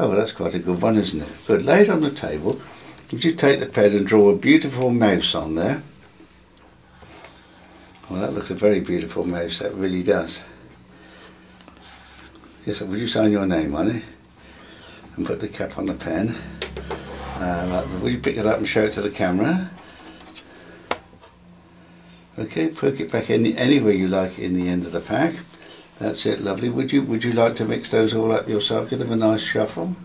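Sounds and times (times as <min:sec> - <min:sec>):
low room hum: 0:00.0 - 0:30.0.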